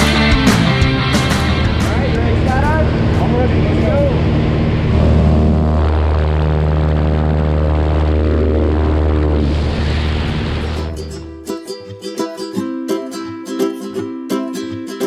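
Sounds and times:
propeller plane engine drone: 0:00.0 - 0:11.4
air rushing in cabin: 0:01.1 - 0:11.4.

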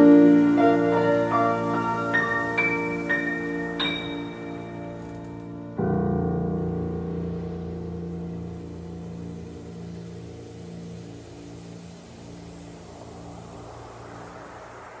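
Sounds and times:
rising rush of noise: 0:00.0 - 0:05.4, 0:06.6 - 0:15.0
piano chord ringing: 0:00.0 - 0:13.3.

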